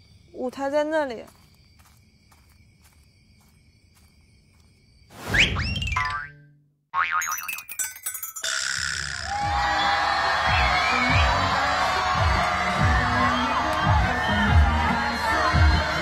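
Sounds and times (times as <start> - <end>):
cartoon boing sound effect: 6.0 - 7.7, 8.4 - 9.3
crowd noise: 9.3 - 16.0.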